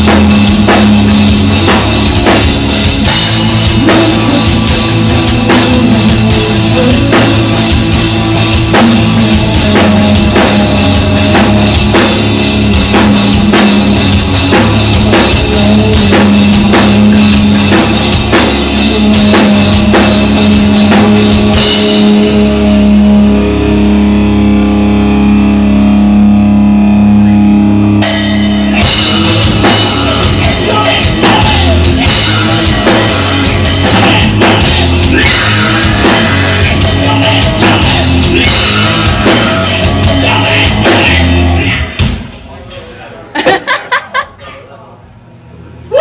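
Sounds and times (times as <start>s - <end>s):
drum kit beat: 0.0s - 25.4s, 27.8s - 42.5s
electric guitar: 0.0s - 42.3s.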